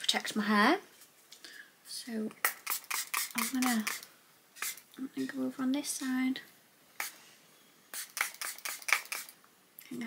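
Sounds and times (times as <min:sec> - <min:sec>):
spray bottle spritzing: 0:02.4 - 0:04.9, 0:07.0 - 0:07.2, 0:07.9 - 0:09.4.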